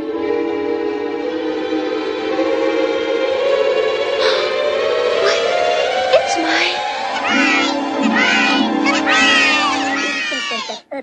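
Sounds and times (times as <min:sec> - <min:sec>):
orchestra: 0:00.0 - 0:10.8
sped-up cartoon voices singing: 0:07.1 - 0:10.8.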